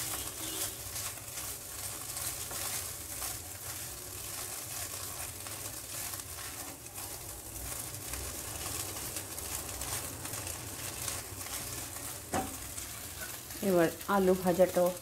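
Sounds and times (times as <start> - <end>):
noodles sizzling in oil: 0.0 - 15.0
spatula scraping pan: 9.8 - 13.6.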